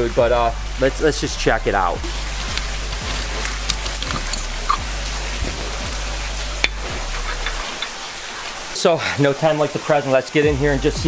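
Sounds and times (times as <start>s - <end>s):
low hum and hiss: 0.0s - 11.0s
small metal clicks: 2.5s - 6.0s
keys jingling: 2.9s - 6.1s
key turning in lock: 3.2s - 5.6s.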